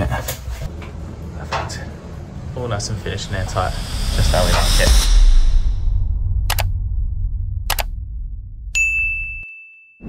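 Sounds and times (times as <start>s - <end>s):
low rumble: 2.0s - 8.7s
notification bell ding: 8.8s - 10.0s.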